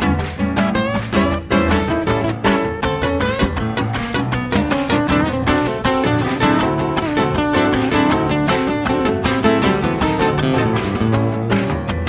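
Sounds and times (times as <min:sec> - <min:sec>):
plucked acoustic guitar: 0:00.0 - 0:12.0.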